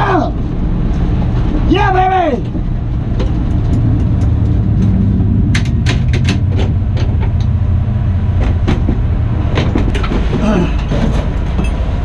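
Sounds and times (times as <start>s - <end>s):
drag car engine rumbling: 0.0s - 12.0s
helmet clicks and knocks: 3.2s - 7.5s, 8.4s - 11.8s.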